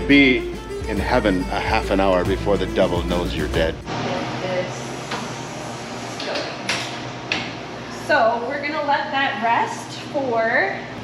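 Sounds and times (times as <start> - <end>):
equipment hiss and hum: 0.0 - 11.0.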